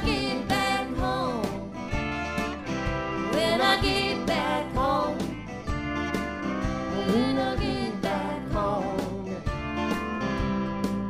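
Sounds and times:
folk band playing: 0.0s - 11.0s.

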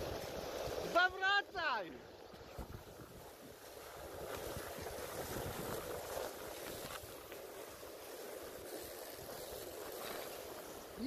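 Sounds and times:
wind buffeting microphone: 2.3s - 11.0s.

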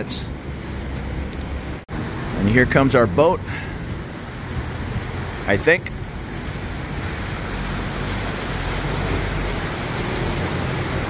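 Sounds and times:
boat engine drone: 0.0s - 11.0s
bow wake splashing: 0.0s - 11.0s.

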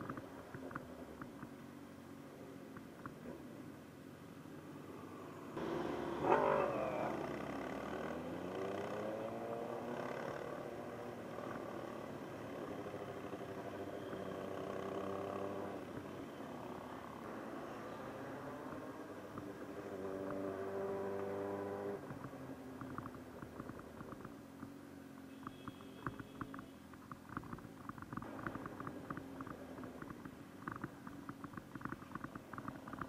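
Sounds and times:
motorcycle engine accelerating: 5.6s - 24.4s, 27.3s - 33.0s.

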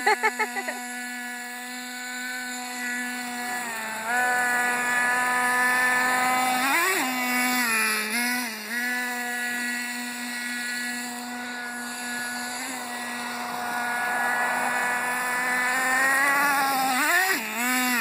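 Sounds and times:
model truck engine running: 0.0s - 18.0s.

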